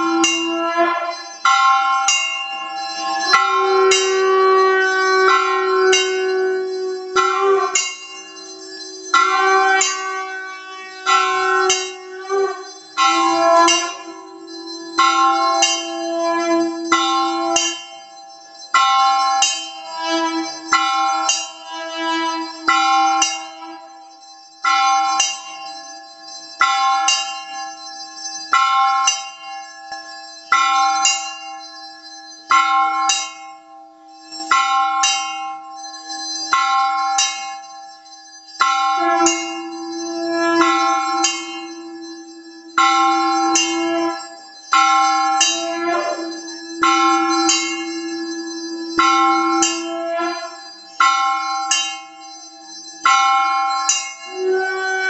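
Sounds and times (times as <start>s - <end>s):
temple bell ringing: 0.0s - 55.0s.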